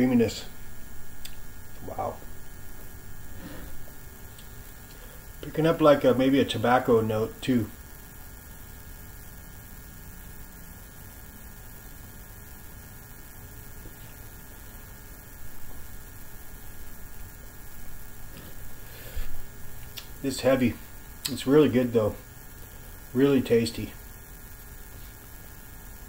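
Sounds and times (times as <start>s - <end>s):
electrical mains hum and hiss: 0.0s - 26.0s.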